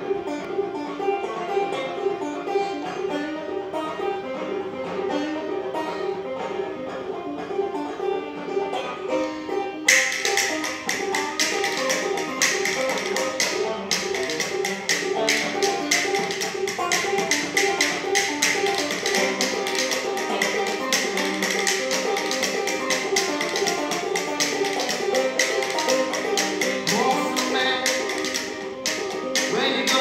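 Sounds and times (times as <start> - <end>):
banjo picking a tune: 0.0 - 30.0
hands slapping body in rhythm: 9.9 - 30.0.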